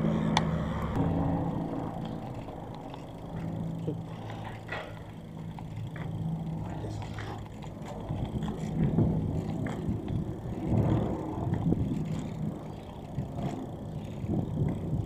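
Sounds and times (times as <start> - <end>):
e-bike tyres rumbling on paving: 0.0 - 15.0.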